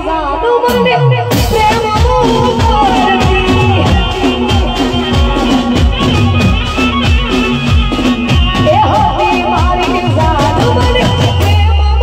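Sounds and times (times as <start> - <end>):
folk band playing: 0.6 - 12.0
dhol drum beats: 0.8 - 12.0.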